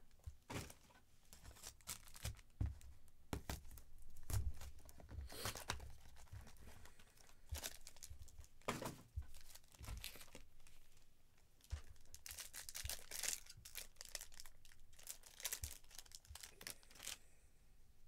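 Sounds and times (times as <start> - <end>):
plastic crinkling and tearing: 1.5 - 2.5, 4.2 - 8.6, 9.3 - 10.5, 11.6 - 17.2
foil packs being torn open: 12.0 - 17.2.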